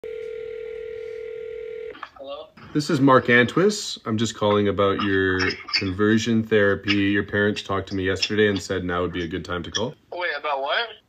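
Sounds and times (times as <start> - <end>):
telephone line tone: 0.0 - 2.0.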